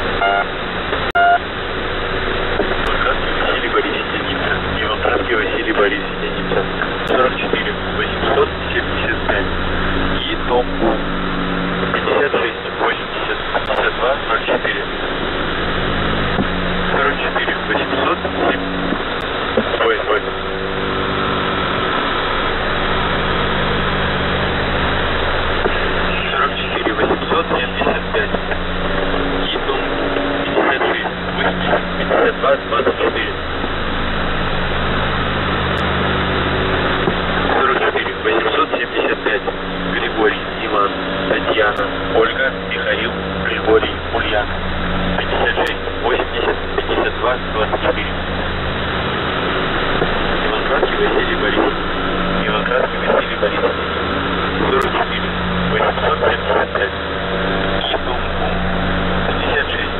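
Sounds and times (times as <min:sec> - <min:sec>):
low hum: 0:00.0 - 0:59.9
radio static: 0:00.0 - 0:59.9.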